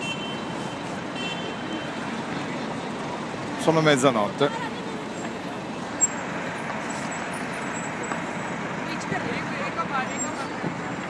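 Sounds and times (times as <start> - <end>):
faint voices of passers-by: 0.0 - 11.0
street traffic: 0.0 - 11.0.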